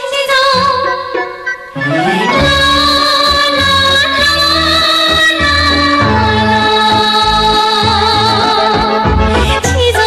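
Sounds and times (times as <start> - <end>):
pop music accompaniment: 0.0 - 10.0
woman singing la la la: 9.6 - 10.0.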